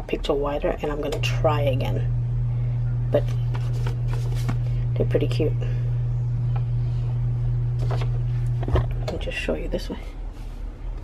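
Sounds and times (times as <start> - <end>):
low hum: 0.0 - 11.0
paper rustling: 3.5 - 4.7.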